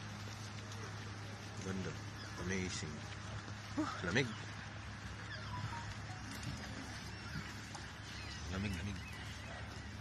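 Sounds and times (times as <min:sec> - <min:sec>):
low hum: 0:00.0 - 0:10.0
outdoor background hiss: 0:00.0 - 0:10.0
high bird calls: 0:01.6 - 0:10.0.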